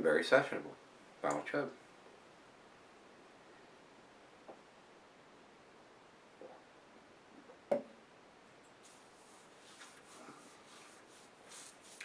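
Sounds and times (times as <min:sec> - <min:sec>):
faint rustling of hands: 0:08.6 - 0:12.0.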